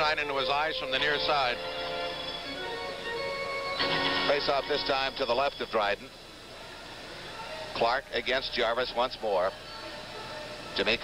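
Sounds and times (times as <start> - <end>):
commentator talking: 0.0 - 1.6, 10.8 - 11.0
music with held tones: 0.0 - 5.7.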